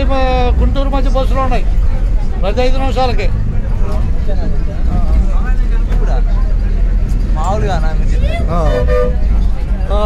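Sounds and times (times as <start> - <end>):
bus engine rumble: 0.0 - 10.0
faint passenger chatter: 0.0 - 10.0
road noise: 0.0 - 10.0.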